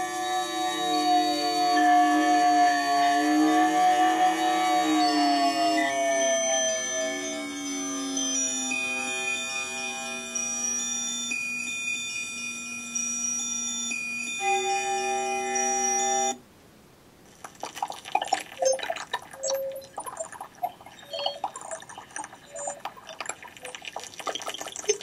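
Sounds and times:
sustained electronic tones: 0:00.0 - 0:16.4, 0:17.5 - 0:25.0
dripping and splashing water: 0:17.3 - 0:25.0.

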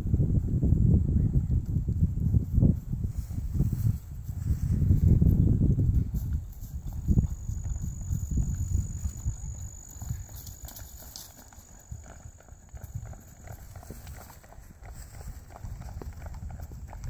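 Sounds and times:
horse hoofbeats on grass: 0:01.4 - 0:17.0.

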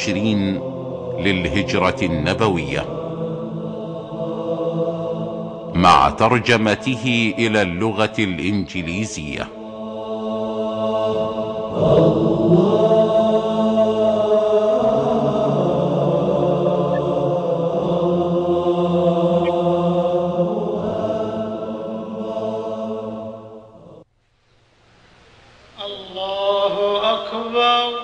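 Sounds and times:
wordless chanting drone: 0:00.0 - 0:24.0, 0:25.8 - 0:28.0.

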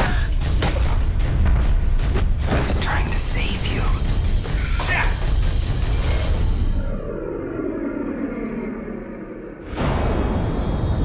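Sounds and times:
low dull drone: 0:04.0 - 0:11.0.

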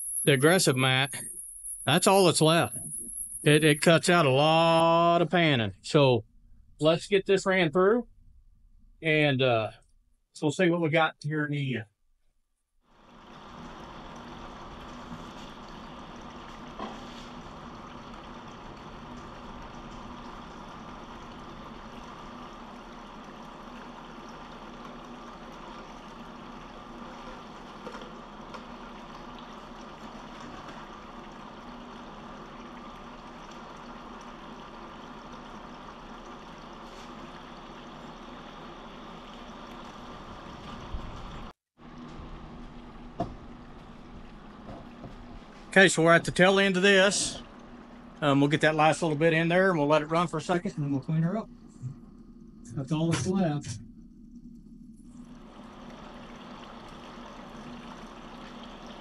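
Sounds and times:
faint steady hum: 0:00.0 - 0:11.8, 0:12.9 - 0:59.0
water running down a sluice: 0:12.9 - 0:50.5, 0:55.1 - 0:59.0.

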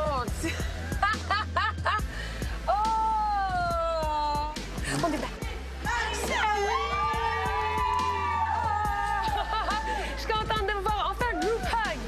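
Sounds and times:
background music with steady beat: 0:00.0 - 0:12.0
crowd noise: 0:05.2 - 0:12.0.

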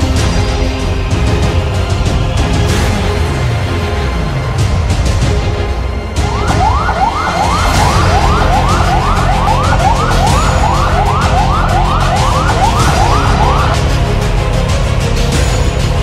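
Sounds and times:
background music: 0:00.0 - 0:16.0
ambulance siren sweeping: 0:06.2 - 0:14.1.

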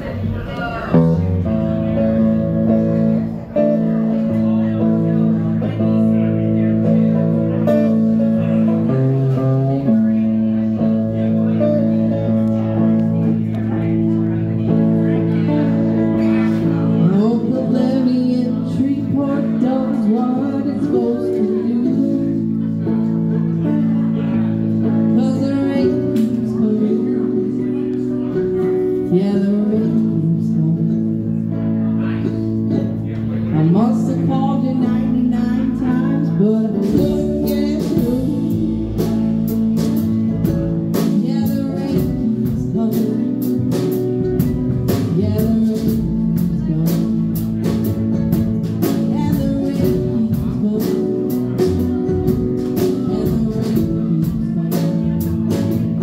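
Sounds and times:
electric guitar: 0:00.0 - 0:56.0
small live band playing: 0:00.0 - 0:56.0
person singing: 0:14.6 - 0:56.0.

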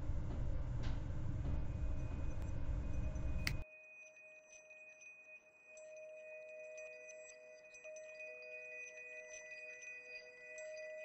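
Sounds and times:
ambient music chime tones: 0:01.8 - 0:11.0
metal lighter click: 0:03.4 - 0:03.6.

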